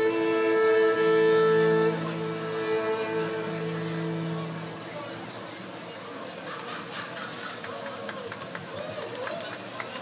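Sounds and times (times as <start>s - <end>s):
scattered hand-clapping: 6.3s - 10.0s.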